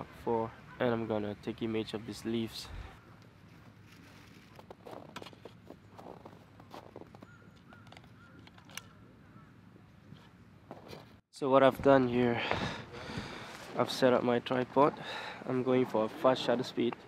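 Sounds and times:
footsteps on snowy ground: 2.9 - 8.4.

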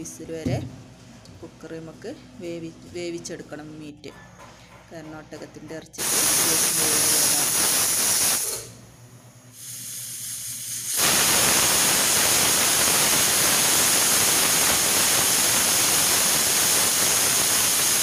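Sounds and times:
pressure cooker hissing steam: 6.0 - 8.8, 9.5 - 18.0.

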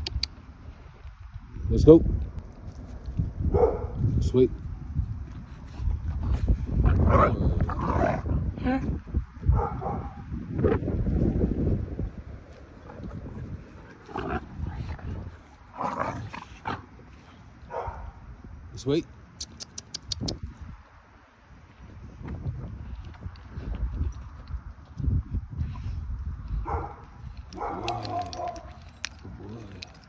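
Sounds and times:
sharp ticks: 0.0 - 0.4, 19.4 - 20.4.

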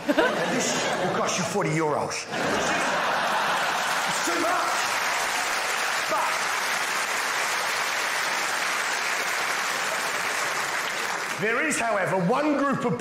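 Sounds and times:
audience laughter: 0.0 - 5.1
audience applauding: 2.5 - 12.0.

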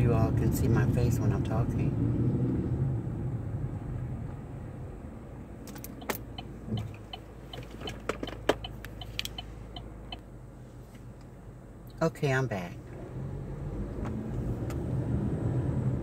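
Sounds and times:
car rumble slowing: 12.8 - 16.0.

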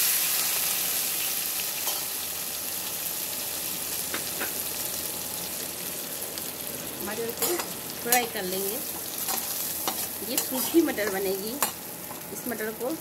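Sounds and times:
peas sizzling in hot oil: 0.0 - 13.0.

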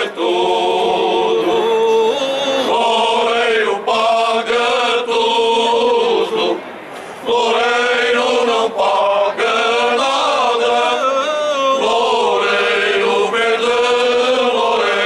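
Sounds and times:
men's choir singing unaccompanied: 0.0 - 15.0.

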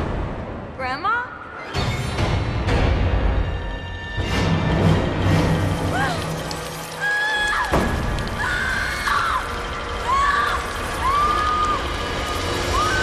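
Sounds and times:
horror film music: 1.4 - 13.0.

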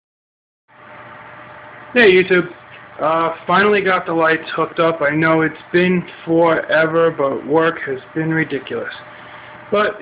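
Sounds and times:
steady background hum and hiss: 0.7 - 10.0.

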